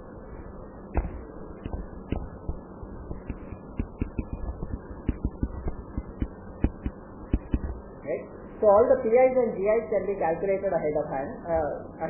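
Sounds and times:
stylus tapping on a tablet: 1.0s - 7.7s.

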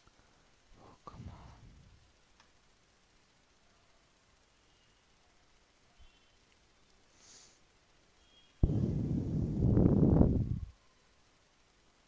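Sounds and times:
low rumbling microphone noise: 1.0s - 2.1s, 8.6s - 10.7s.

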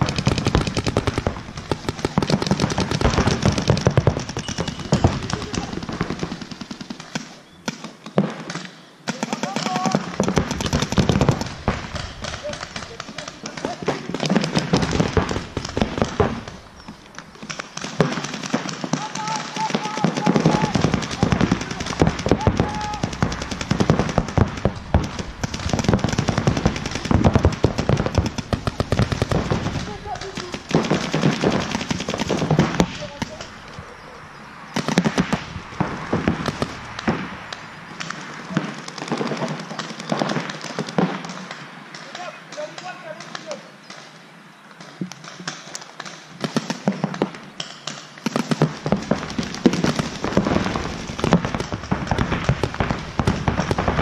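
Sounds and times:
paintball markers firing: 0.0s - 33.8s, 34.8s - 54.0s
voices calling out: 0.0s - 47.5s.

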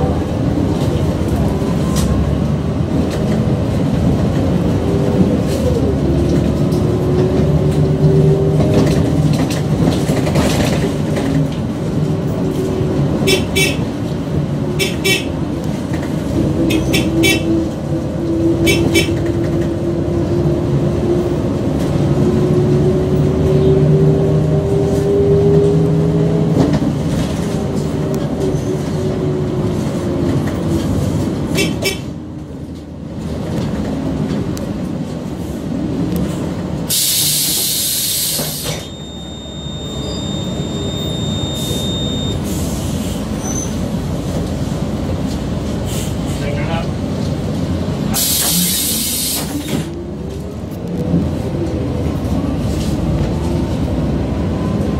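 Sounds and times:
bus engine running: 0.0s - 54.9s
air brakes hissing: 36.9s - 39.0s, 41.5s - 43.8s, 45.8s - 46.5s, 48.1s - 49.9s
steady high tone: 38.7s - 42.5s.

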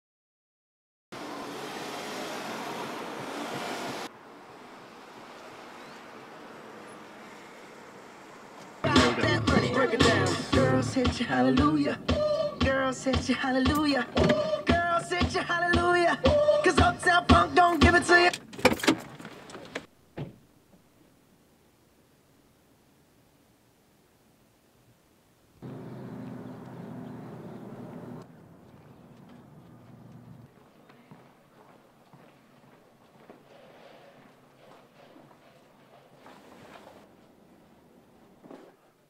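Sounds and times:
music from car stereo: 8.8s - 18.4s.

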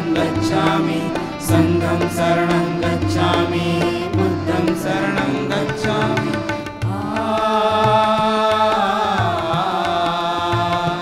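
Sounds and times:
harmonium sustained notes: 0.0s - 11.0s.

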